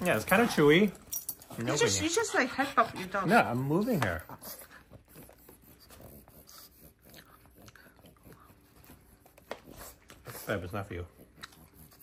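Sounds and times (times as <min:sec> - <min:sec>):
chewing soft food: 0:06.9 - 0:10.2, 0:11.2 - 0:12.0.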